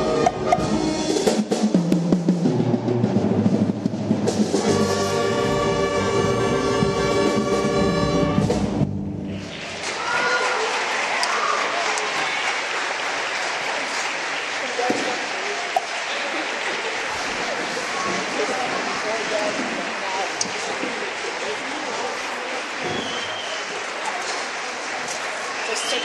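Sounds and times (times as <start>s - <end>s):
orchestra with brass and timpani: 0.0s - 9.3s
audience applause: 9.2s - 26.0s.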